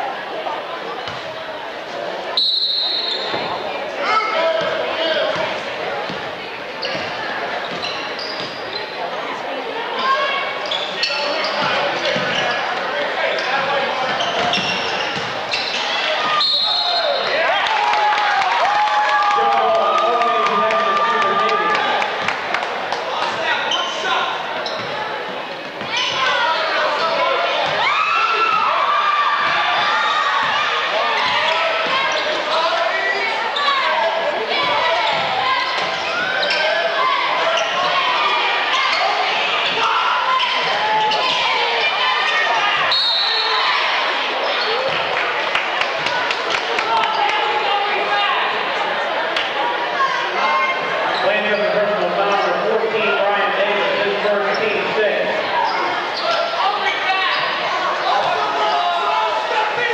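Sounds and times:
people shouting: 0:25.9 - 0:44.9, 0:55.9 - 0:59.9.

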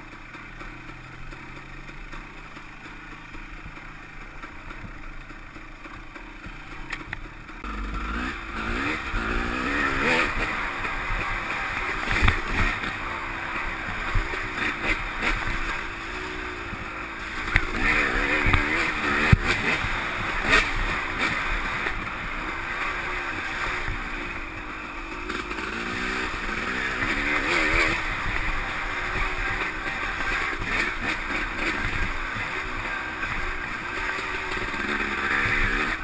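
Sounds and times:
dirt bike engine revving: 0:00.0 - 0:36.0.

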